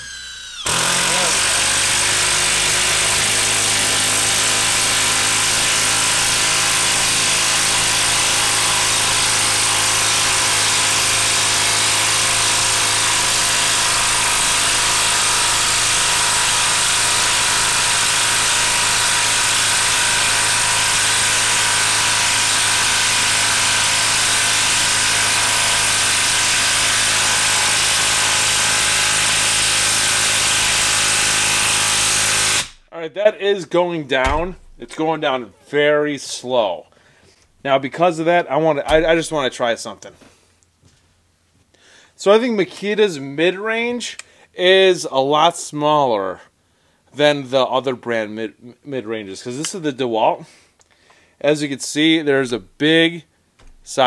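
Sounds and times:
impact wrench hammering: 0.0 - 7.8, 34.2 - 35.0, 38.9 - 39.5.

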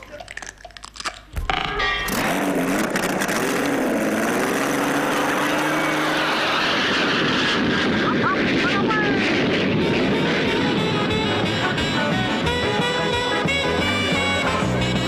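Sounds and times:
model aeroplane engine drone: 6.8 - 15.0.

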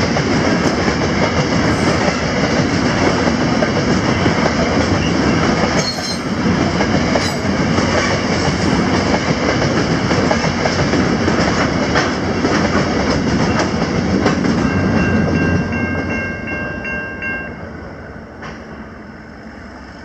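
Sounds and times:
clickety-clack over rail joints: 0.0 - 16.3, 18.4 - 18.8
freight train wheels rumbling: 0.0 - 20.0.

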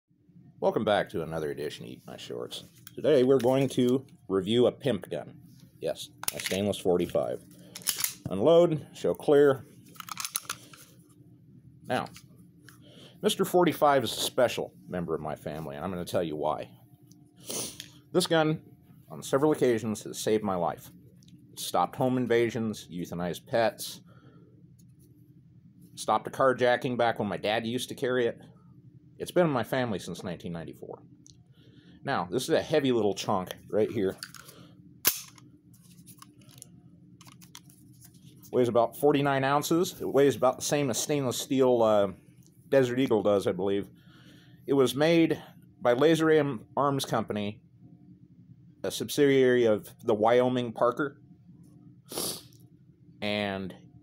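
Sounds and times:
pistol metallic clicks: 35.1 - 35.4.

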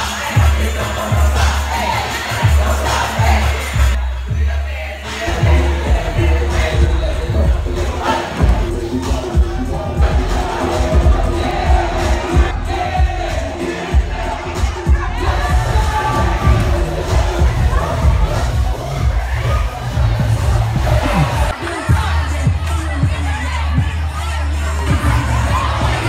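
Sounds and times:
crowd shouting and cheering: 0.0 - 26.0
dance music with heavy bass: 0.0 - 26.0.

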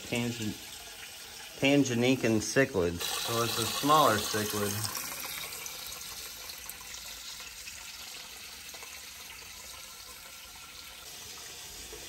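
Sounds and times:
hose water pouring and splashing: 0.0 - 12.0.

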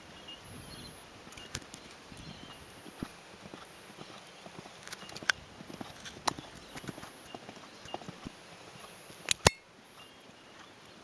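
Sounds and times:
horse hoofbeats on sand: 1.7 - 11.0.

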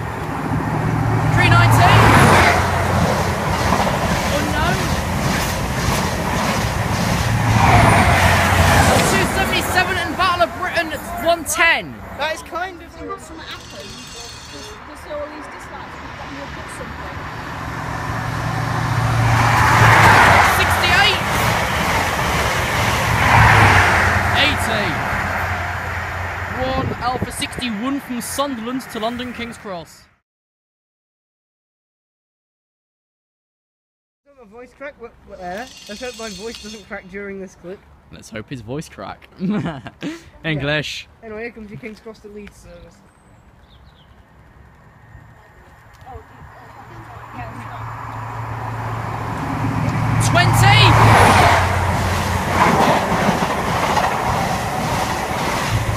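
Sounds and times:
wheel-on-rail noise: 0.0 - 29.6, 35.4 - 37.0, 42.3 - 55.9
diesel train passing at speed: 0.0 - 29.9, 44.2 - 55.9.

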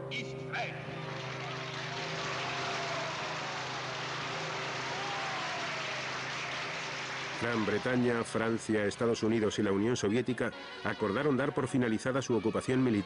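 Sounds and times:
large crowd cheering: 0.8 - 9.8
man's voice: 7.4 - 13.0.

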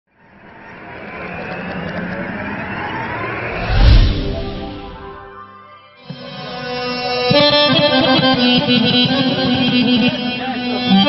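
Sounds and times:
noisy whoosh: 2.3 - 5.4
deep boom: 3.6 - 5.3.

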